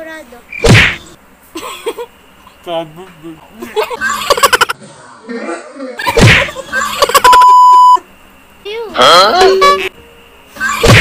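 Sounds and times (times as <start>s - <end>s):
person gagging: 5.2s - 6.2s
censor bleep: 7.3s - 8.0s, 9.4s - 9.9s.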